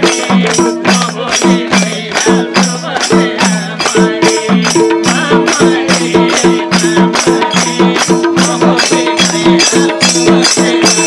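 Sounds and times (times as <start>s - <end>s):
hand drums playing fast rhythm: 0.0s - 11.0s.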